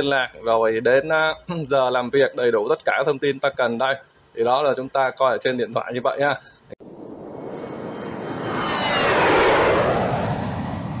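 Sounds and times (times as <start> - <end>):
whoosh with falling whistle: 6.9 - 11.0.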